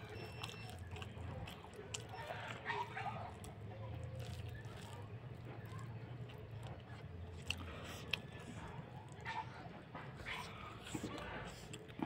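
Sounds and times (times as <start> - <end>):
mouth chewing food: 0.0 - 12.0.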